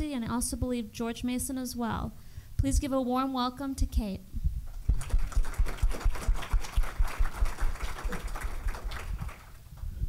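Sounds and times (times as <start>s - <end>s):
audience applauding: 4.9s - 9.6s.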